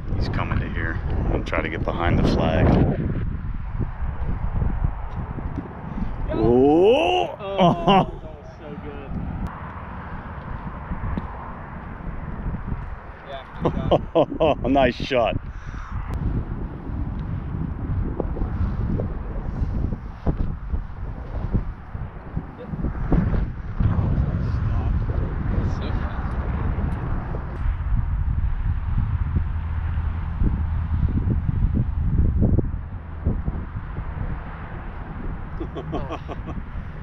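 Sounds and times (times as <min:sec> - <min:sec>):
wind buffeting microphone: 0:00.0 - 0:37.0.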